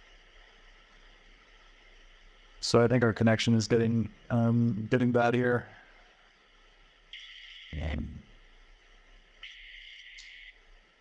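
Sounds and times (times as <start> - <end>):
thin hiss cutting in and out: 5.4 - 11.0.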